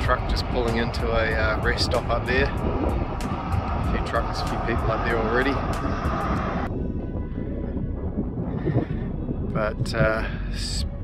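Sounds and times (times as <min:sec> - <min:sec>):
faint background music: 0:00.0 - 0:11.0
wind buffeting microphone: 0:00.0 - 0:11.0.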